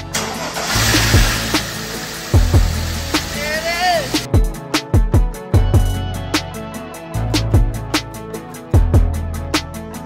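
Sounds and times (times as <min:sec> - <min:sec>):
car engine starting: 0:00.0 - 0:04.3
background music with kick drum: 0:00.8 - 0:10.0.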